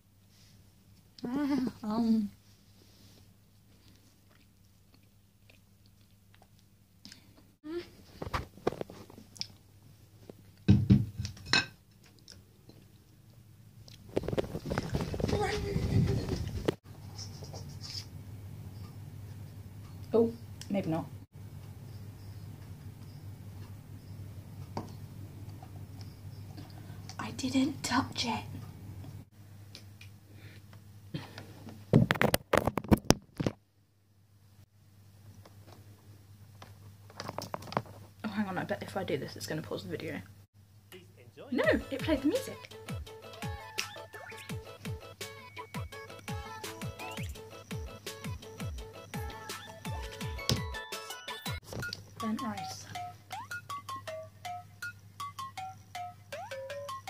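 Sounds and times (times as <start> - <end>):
handling noise on microphone: 14.1 - 16.8.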